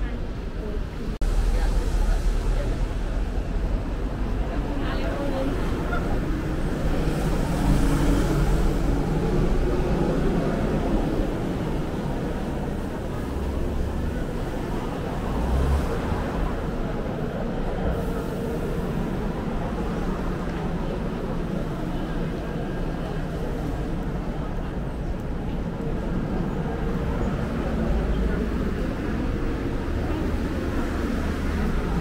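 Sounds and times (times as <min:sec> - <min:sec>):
passing vehicles engine rumble: 0:00.0 - 0:32.0
road traffic: 0:00.0 - 0:32.0.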